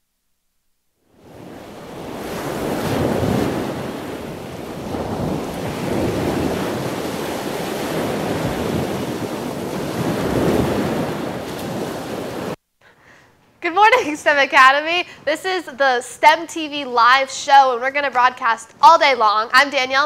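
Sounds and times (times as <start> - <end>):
ocean waves breaking: 1.1 - 12.6.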